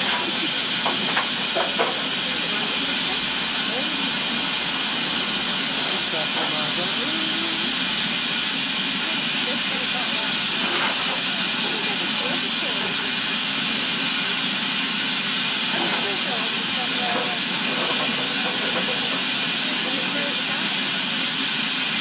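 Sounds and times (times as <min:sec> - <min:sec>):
faint voices: 0:00.0 - 0:14.4, 0:15.7 - 0:20.9
steam locomotive hissing: 0:00.0 - 0:22.0.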